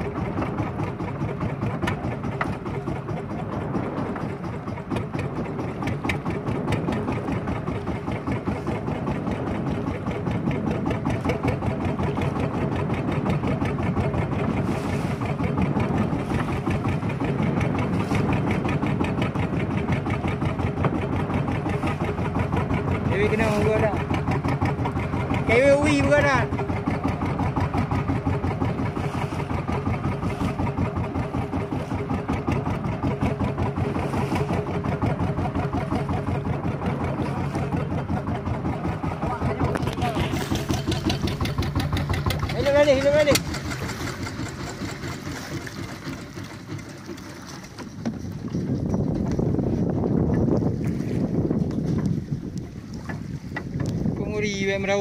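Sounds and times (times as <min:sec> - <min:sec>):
boat engine pulsing: 0:00.0 - 0:55.0
water: 0:00.0 - 0:55.0
wind: 0:00.0 - 0:55.0.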